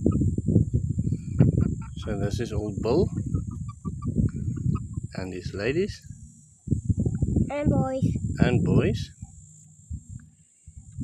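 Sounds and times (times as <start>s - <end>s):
faint low rumbles: 0.0s - 11.0s.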